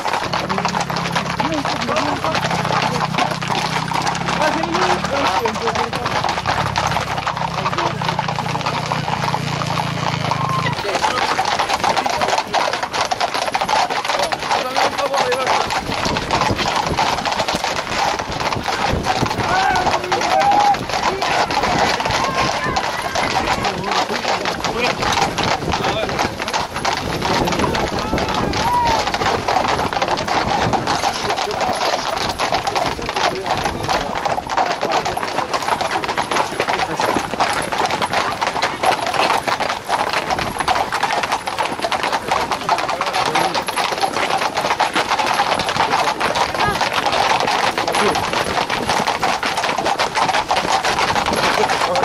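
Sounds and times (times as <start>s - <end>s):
horse hooves clattering on asphalt: 0.0s - 52.0s
crowd voices: 0.3s - 16.4s, 18.4s - 30.2s.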